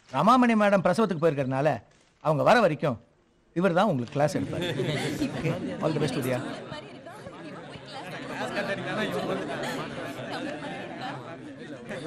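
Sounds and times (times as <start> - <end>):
students chattering: 4.3 - 12.0.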